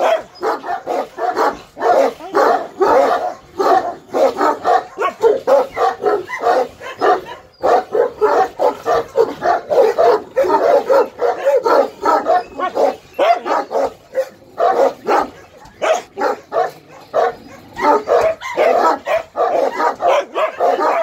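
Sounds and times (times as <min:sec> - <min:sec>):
dogs barking: 0:00.0 - 0:21.0.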